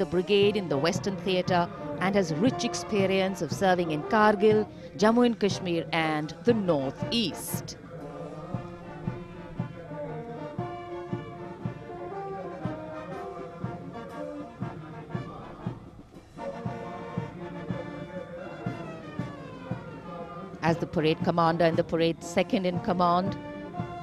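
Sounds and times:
brass band playing: 0.0s - 24.0s.

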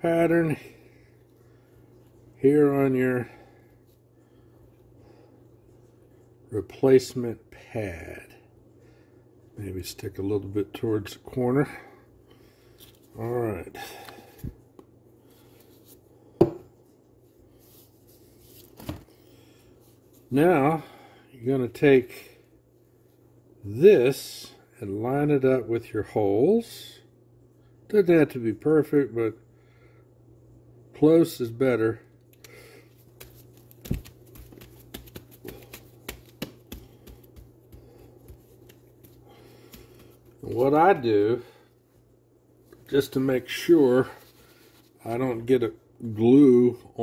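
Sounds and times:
faint steady hum: 0.0s - 47.0s
hands tapping and rubbing pad: 32.4s - 40.6s.

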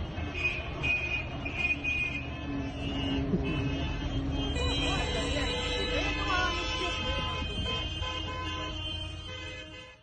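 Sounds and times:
car horns honking: 0.0s - 10.0s
street traffic noise: 0.0s - 10.0s.

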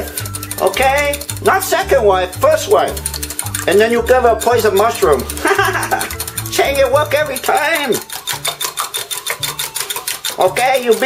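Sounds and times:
wire whisk clicking on glass: 0.0s - 11.0s.

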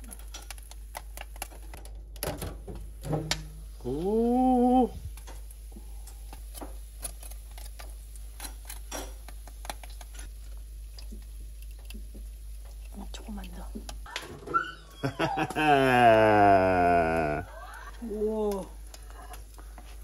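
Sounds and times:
pork skin crackling and spitting: 0.0s - 1.8s, 3.8s - 14.2s, 15.4s - 20.0s
oven low hum: 0.0s - 20.0s.

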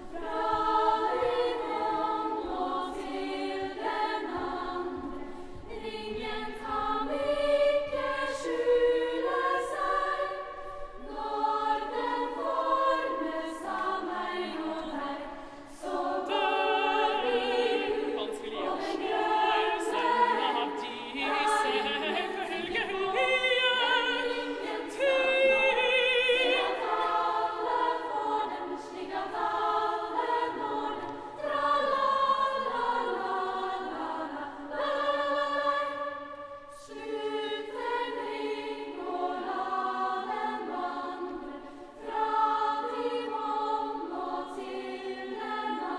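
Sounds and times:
girls' choir singing unaccompanied: 0.0s - 45.9s.

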